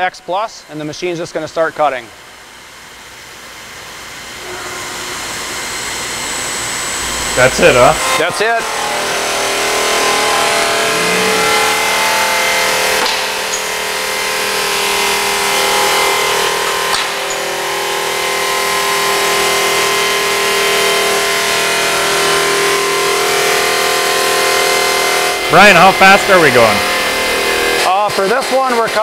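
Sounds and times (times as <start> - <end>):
saw blade whining: 3.9 - 29.0.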